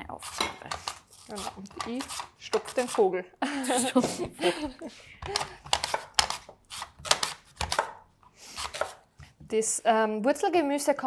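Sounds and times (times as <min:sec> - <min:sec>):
woman talking: 0:00.0 - 0:04.7, 0:09.5 - 0:11.0
woman laughing: 0:03.4 - 0:05.6
utensils clicking on cutting board: 0:05.2 - 0:08.0.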